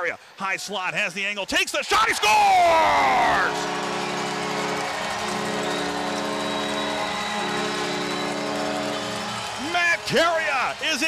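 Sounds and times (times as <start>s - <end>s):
crowd cheering: 1.8s - 11.0s
goal horn blaring: 2.9s - 10.5s.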